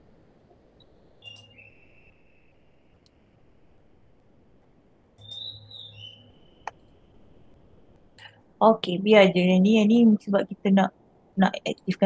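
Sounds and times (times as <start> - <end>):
sharp click: 1.2 - 1.6, 5.2 - 5.5.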